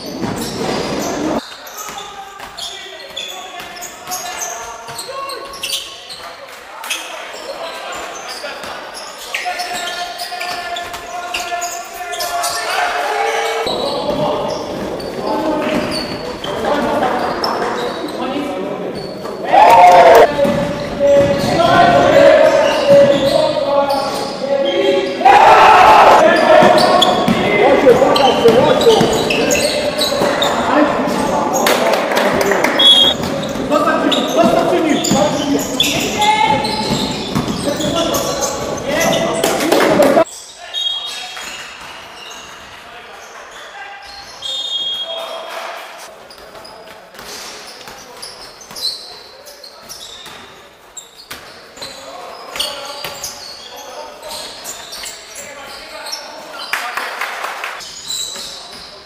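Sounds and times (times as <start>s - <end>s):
shoe squeaks: 0.0s - 25.3s, 26.1s - 31.8s, 32.7s - 45.4s, 46.0s - 56.9s, 57.8s - 59.0s
players calling out: 6.8s - 41.2s
basketball bouncing on wood floor: 26.6s - 30.5s, 34.4s - 38.7s.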